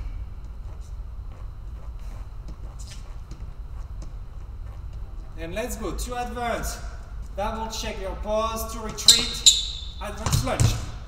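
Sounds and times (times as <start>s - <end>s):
low hum of hall: 0.0s - 11.0s
sneakers scuffing on floor: 0.4s - 5.4s, 8.7s - 11.0s.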